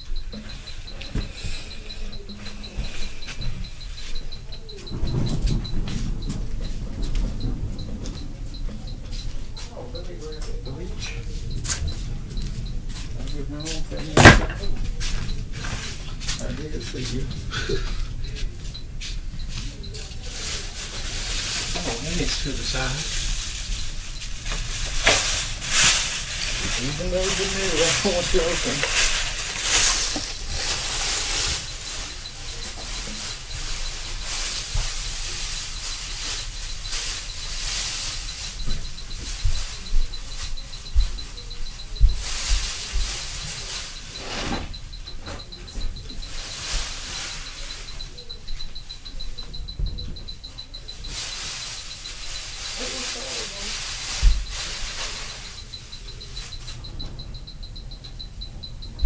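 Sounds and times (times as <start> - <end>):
constant hiss: 0.0 - 59.0
dull low thuds: 38.6 - 43.3.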